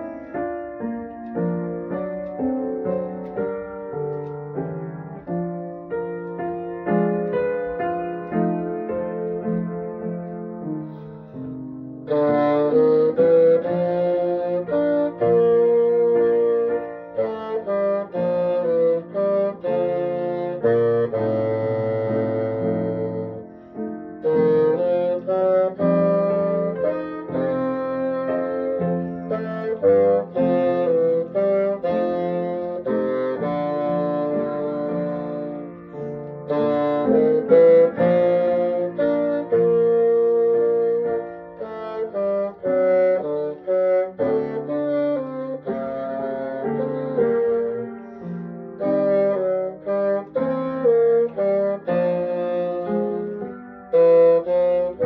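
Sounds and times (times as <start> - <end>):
bassoon melody: 0.0 - 55.0.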